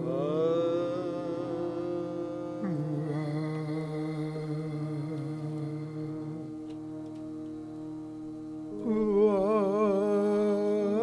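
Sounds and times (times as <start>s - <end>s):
man singing long note: 0.0s - 7.6s, 8.7s - 11.0s
harmonium drone: 0.0s - 11.0s.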